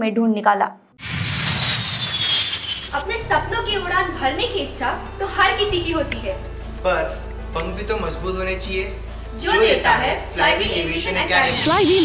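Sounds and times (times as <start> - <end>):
jet airliner flying low: 1.0 - 3.0
high engine whine: 1.0 - 3.2.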